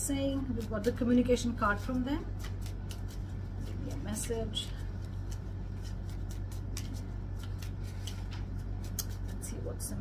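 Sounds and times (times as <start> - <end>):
steady low hum: 0.0 - 10.0
cards shuffling: 1.8 - 9.5.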